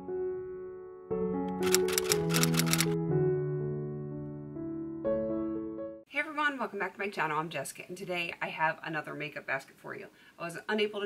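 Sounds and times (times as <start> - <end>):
soft piano music: 0.0 - 6.1
rapid clicking sound effects: 1.5 - 3.0.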